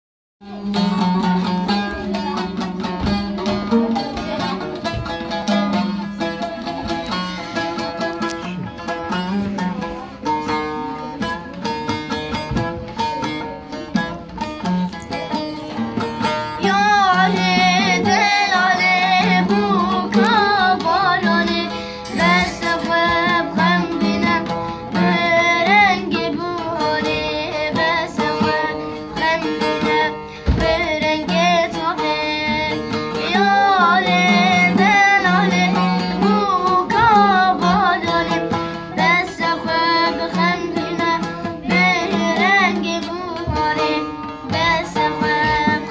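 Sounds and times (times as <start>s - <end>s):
boy singing folk song: 0.4s - 45.9s
long-necked lute strummed: 0.4s - 45.9s.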